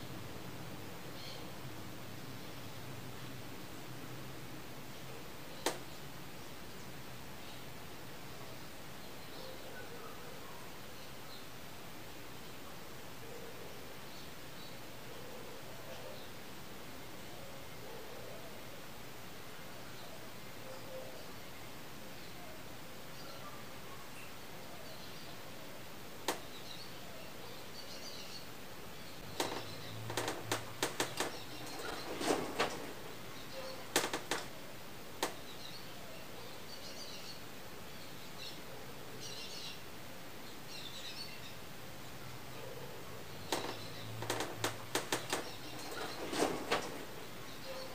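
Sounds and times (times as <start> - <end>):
room background noise: 0.0 - 47.9
sharp clicks and knocks: 5.6 - 5.8, 29.2 - 34.5, 35.2 - 35.4, 43.5 - 47.4.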